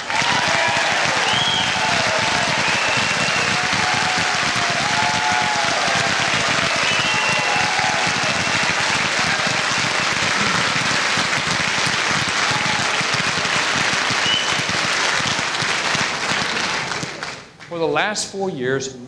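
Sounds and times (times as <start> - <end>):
large audience applauding: 0.0 - 17.8.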